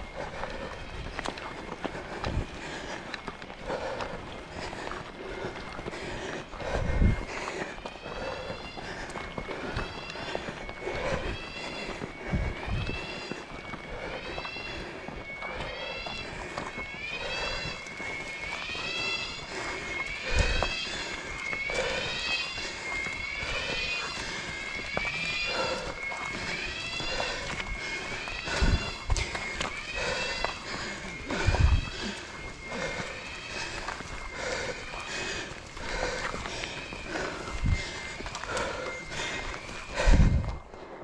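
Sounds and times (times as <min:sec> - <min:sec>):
runners footsteps: 0:00.0 - 0:41.0.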